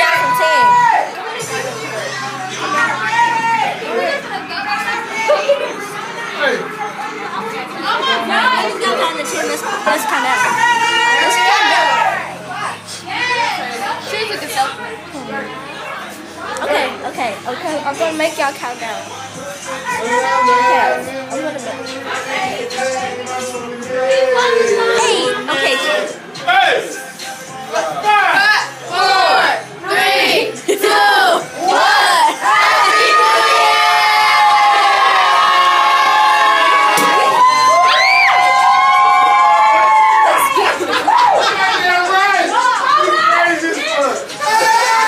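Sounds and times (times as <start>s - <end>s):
children talking and calling out: 0.0s - 18.5s, 40.2s - 45.0s
crowd shouting and cheering: 0.0s - 45.0s.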